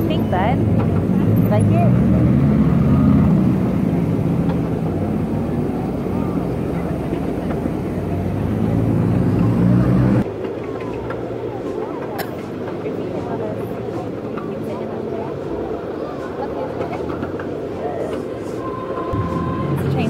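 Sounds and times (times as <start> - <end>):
faint voices: 0.0 - 20.0
train rumbling: 0.0 - 20.0.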